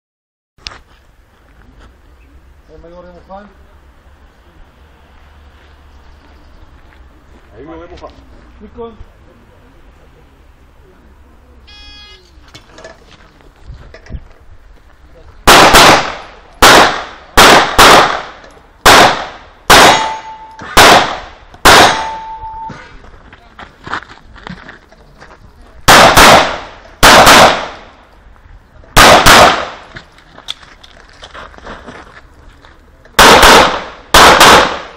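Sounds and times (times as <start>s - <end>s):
shot timer start beep: 11.7s - 12.2s
pistol shots: 15.5s - 22.4s, 25.9s - 27.9s, 29.0s - 29.9s, 33.2s - 34.9s.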